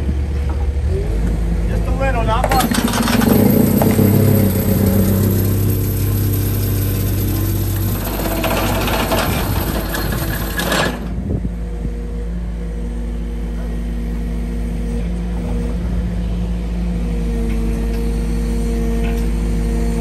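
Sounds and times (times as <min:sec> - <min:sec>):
engine running steadily: 0:00.0 - 0:20.0.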